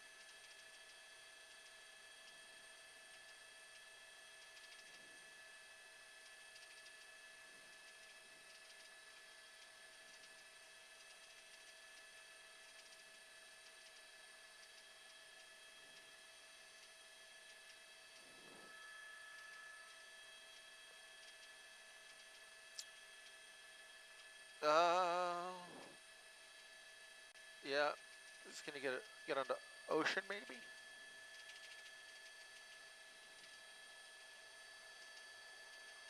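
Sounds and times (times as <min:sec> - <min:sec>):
faint electronic hum: 0:00.0 - 0:36.0.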